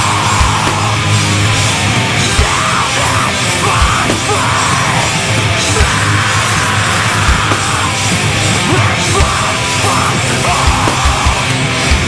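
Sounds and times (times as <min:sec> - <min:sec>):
person screaming vocals: 0:00.0 - 0:01.2, 0:02.2 - 0:11.7
distorted electric guitar: 0:00.0 - 0:12.0
drums: 0:00.0 - 0:12.0.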